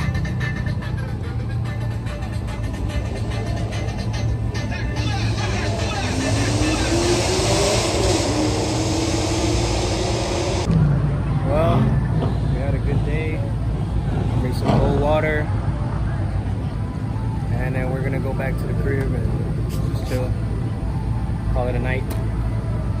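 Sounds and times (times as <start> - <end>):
steady low drone: 0.0 - 14.6
people's voices: 2.1 - 7.7
car engine accelerating: 3.0 - 12.5.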